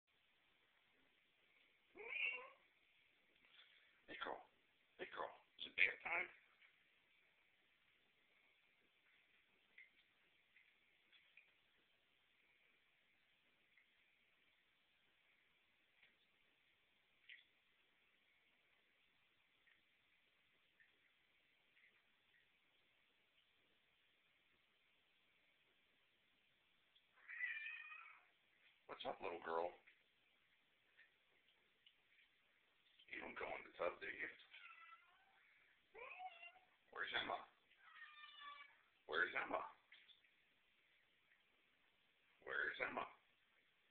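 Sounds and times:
cat meowing: 0:02.0 - 0:02.7, 0:27.2 - 0:28.3, 0:34.5 - 0:36.8, 0:37.8 - 0:38.8.

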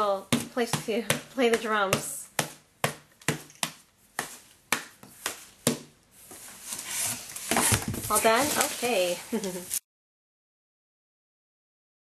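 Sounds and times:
rustling: 0:03.2 - 0:09.8.

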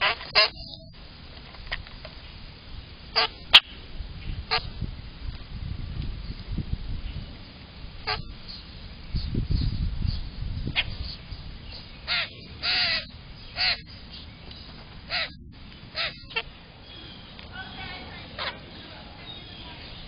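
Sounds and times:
grackles harsh calls: 0:00.0 - 0:01.0, 0:03.1 - 0:03.8, 0:04.4 - 0:04.7, 0:08.0 - 0:08.7, 0:10.6 - 0:20.0
low rumble near microphone: 0:00.0 - 0:20.0.

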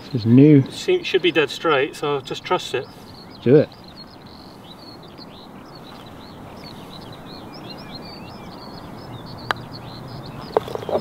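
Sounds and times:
birds chirping: 0:00.0 - 0:11.0.

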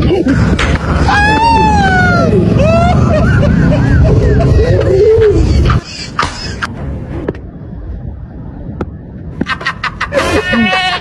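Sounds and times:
steady low rumble: 0:00.0 - 0:10.2
men talking and exclaiming: 0:00.8 - 0:05.8.

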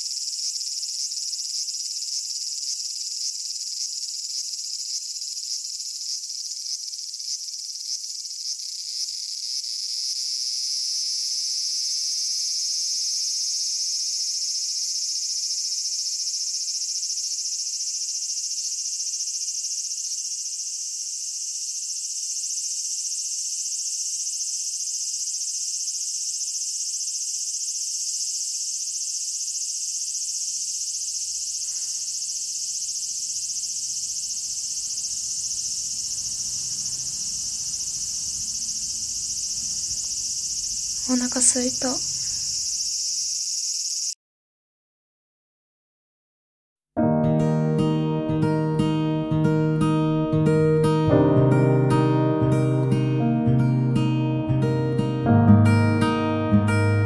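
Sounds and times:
insects shrilling: 0:00.0 - 0:44.2.

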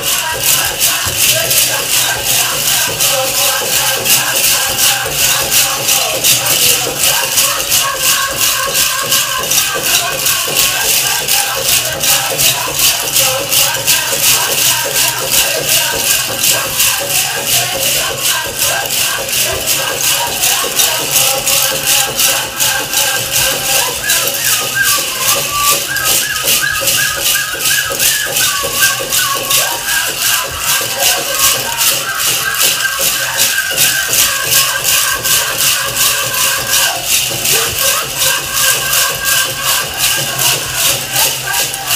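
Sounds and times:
high-pitched singing: 0:00.0 - 0:41.9
powwow drum music: 0:00.0 - 0:41.9
tin cones rattling: 0:00.0 - 0:41.9.

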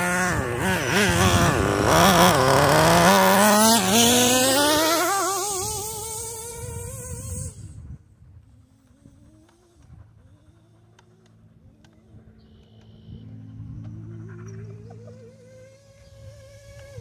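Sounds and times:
small engine revving: 0:00.0 - 0:17.0.

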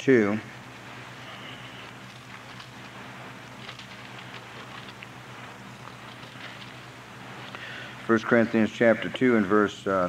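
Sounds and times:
low electrical hum: 0:00.0 - 0:10.0
pages rustling: 0:01.2 - 0:07.7.

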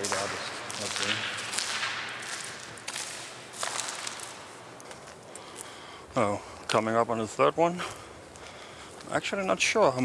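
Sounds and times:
footsteps on gravel and leaves: 0:00.0 - 0:05.9.

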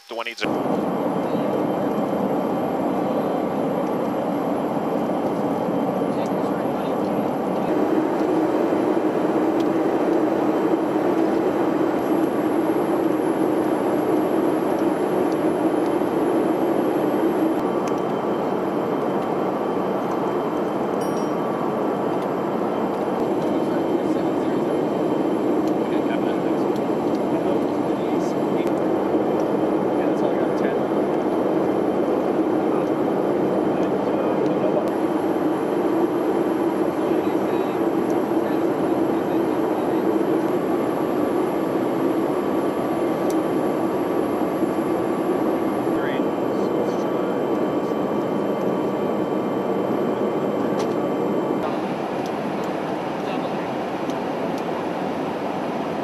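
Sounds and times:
aircraft cabin engine drone: 0:00.0 - 0:56.0
thin high whine: 0:00.0 - 0:56.0.

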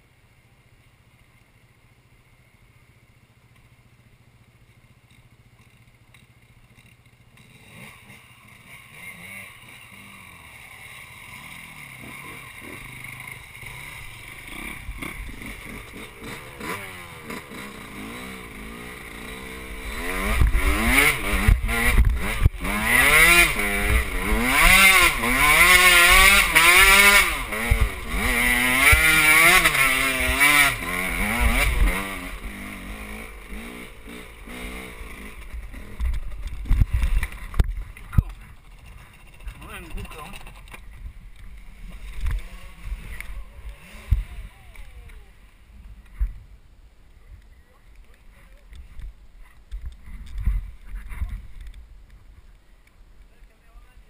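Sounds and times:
dirt bike engine revving: 0:04.9 - 0:46.3.

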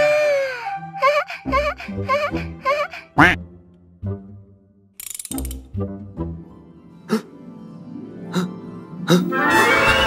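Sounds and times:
rapid ratcheting clicks: 0:05.0 - 0:05.6.

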